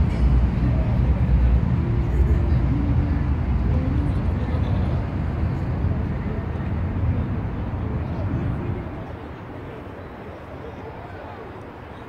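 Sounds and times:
distant people talking: 0:00.0 - 0:12.0
low rumble of road traffic: 0:00.0 - 0:12.0.

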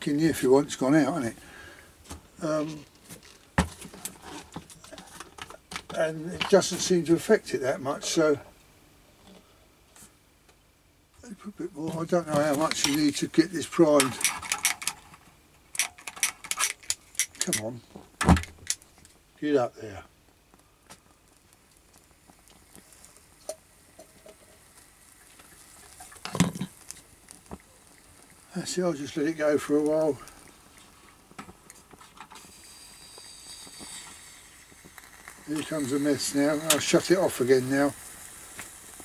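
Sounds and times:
stove hissing and whistling: 0:11.5 - 0:17.8, 0:20.5 - 0:39.0.

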